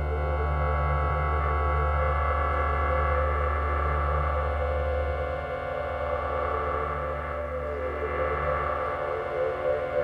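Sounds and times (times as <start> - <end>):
ambient synthesizer drone: 0.0 - 10.0.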